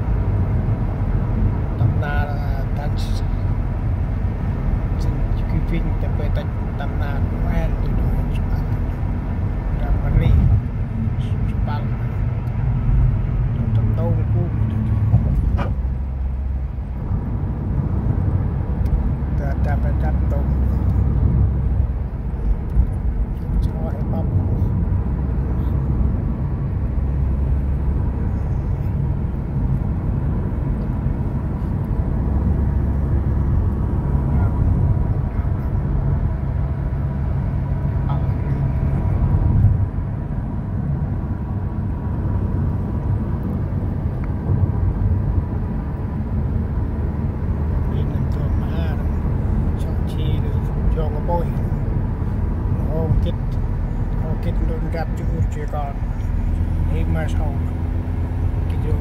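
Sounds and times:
car cabin road and engine rumble: 0.0s - 59.0s.

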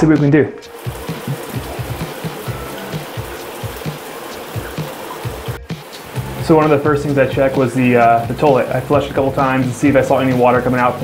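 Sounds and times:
background music: 0.0s - 11.0s
shower water spraying: 0.6s - 11.0s.

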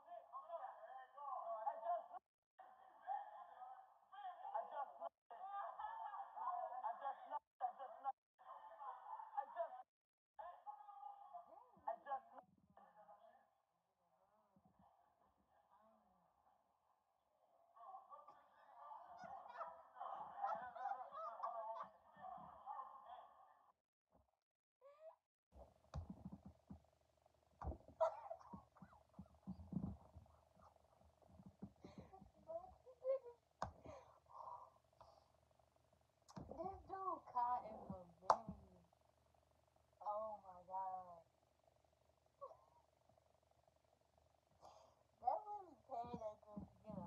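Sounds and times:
quieter laughter: 4.3s - 9.8s, 17.8s - 23.7s, 31.5s - 34.8s
shrill honking laughter: 18.3s - 23.2s
faint steady hum: 25.6s - 47.0s
breath: 33.8s - 35.4s, 44.6s - 45.1s
person speaking: 36.3s - 38.8s.

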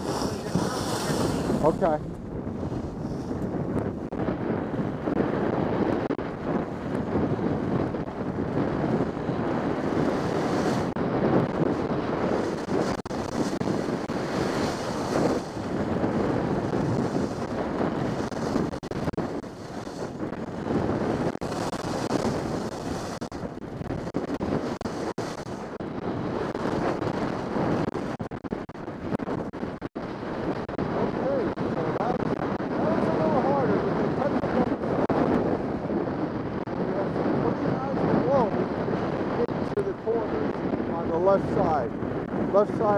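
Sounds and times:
wind rushing over microphone: 0.0s - 42.9s.

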